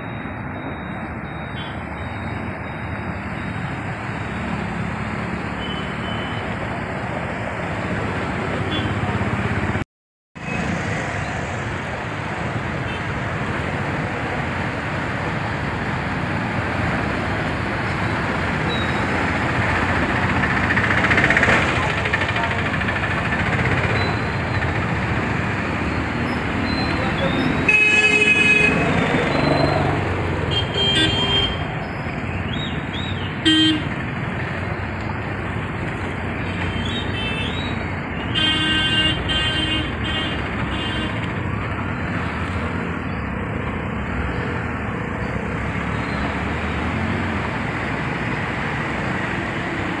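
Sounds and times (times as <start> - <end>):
vehicle horns honking: 8.6 - 9.0, 26.8 - 29.1, 30.5 - 31.7, 33.4 - 34.0, 38.2 - 41.2
vehicles driving through water: 10.4 - 38.4, 39.8 - 50.0.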